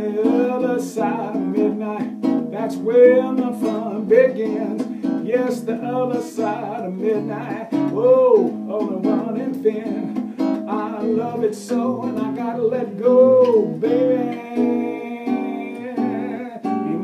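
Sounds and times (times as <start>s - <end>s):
acoustic guitar strumming blues: 0.0s - 17.0s
wordless singing: 0.0s - 17.0s.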